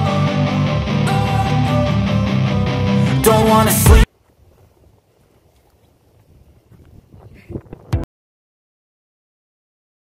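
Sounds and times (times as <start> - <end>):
wind buffeting microphone: 4.4 - 8.0.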